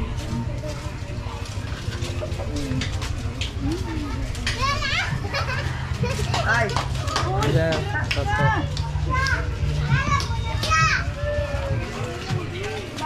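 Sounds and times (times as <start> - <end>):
distant chatter: 0.0 - 13.0
steady low rumble: 0.0 - 13.0
children shouting: 4.5 - 6.4, 8.8 - 13.0.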